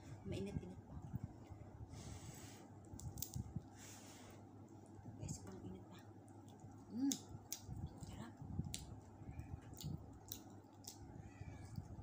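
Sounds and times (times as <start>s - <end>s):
chewing crispy chicken: 6.3s - 11.1s.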